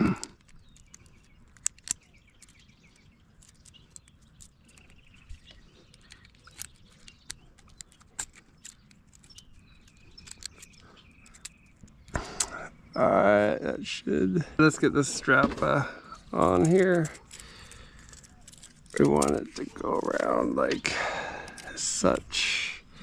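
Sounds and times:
faint birds chirping: 0.0s - 23.0s.

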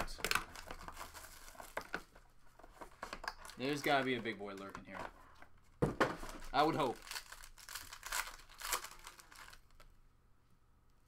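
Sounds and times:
foil card pack tearing and crinkling: 6.6s - 9.7s.

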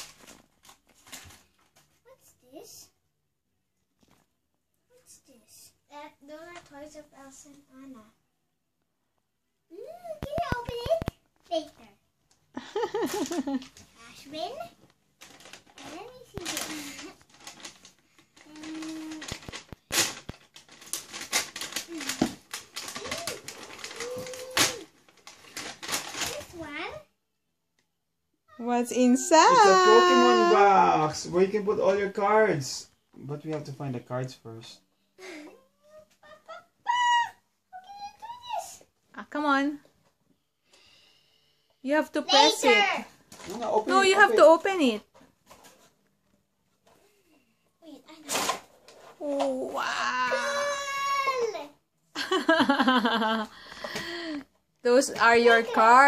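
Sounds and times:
paper bag crinkling: 15.2s - 26.6s, 43.3s - 44.6s
person humming: 29.4s - 30.5s.

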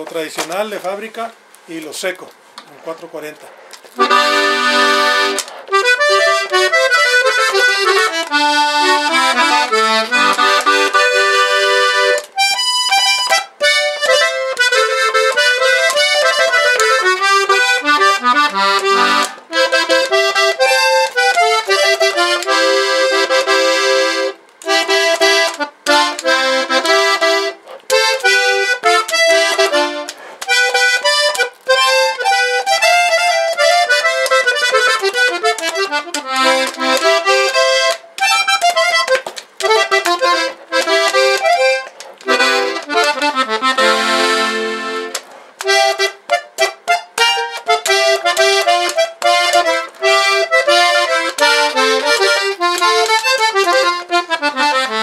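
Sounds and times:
button accordion melody: 2.8s - 55.0s.

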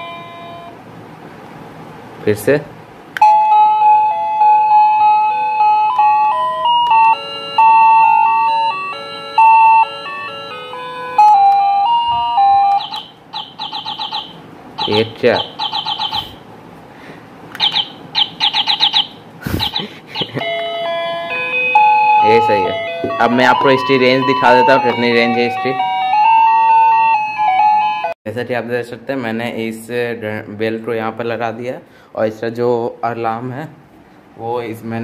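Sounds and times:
doorbell chime beeping notes: 0.0s - 0.8s, 3.2s - 16.3s, 20.2s - 28.1s
doorbell fast high chirps: 3.2s - 16.4s, 17.6s - 28.1s.

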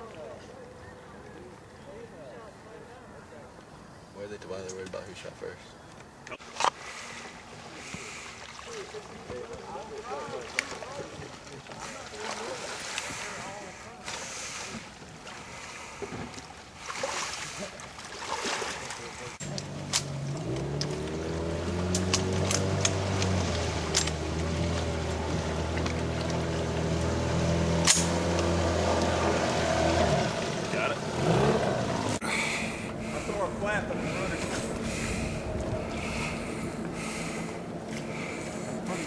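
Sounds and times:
water splashing: 6.3s - 39.0s
outboard motor running: 19.1s - 39.0s
wind noise: 32.9s - 37.4s.

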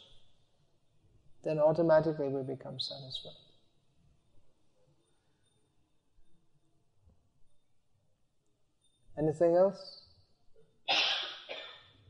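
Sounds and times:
person coughing: 10.9s - 11.9s.

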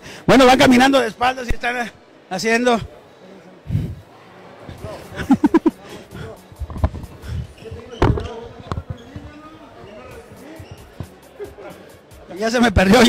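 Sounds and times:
scattered voices: 2.7s - 13.0s.

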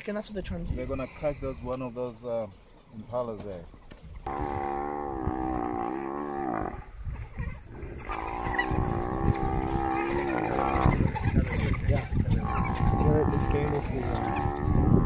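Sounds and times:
buffalo bellowing: 4.2s - 15.0s.

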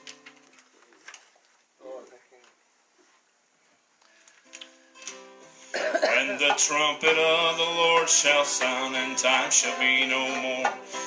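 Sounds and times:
acoustic guitar plucked chords: 5.0s - 11.0s.

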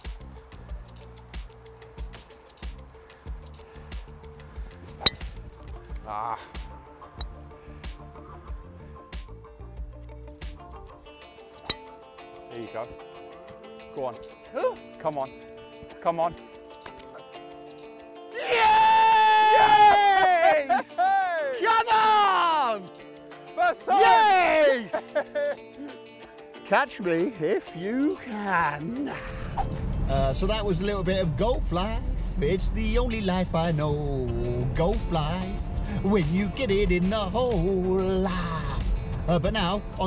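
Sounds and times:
background music with beat: 0.0s - 40.0s
golf club striking ball: 4.9s - 5.6s, 11.6s - 12.0s
man yelling: 18.3s - 22.9s, 23.6s - 25.0s.

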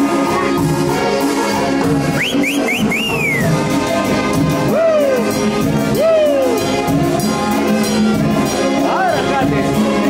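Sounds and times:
dance band music with horns: 0.0s - 10.0s
person whistling: 2.1s - 3.6s.

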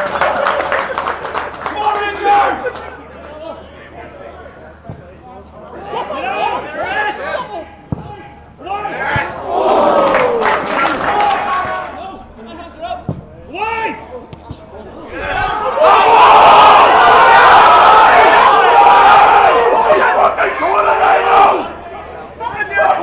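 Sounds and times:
spectators and players shouting: 5.7s - 12.3s, 14.8s - 23.0s
crowd roaring: 8.6s - 12.1s, 14.9s - 23.0s.

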